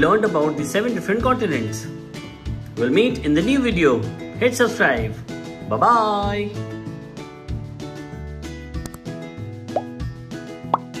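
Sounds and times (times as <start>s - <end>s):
background music: 0.0s - 11.0s
rising pop sound effects: 9.7s - 10.0s, 10.6s - 11.0s.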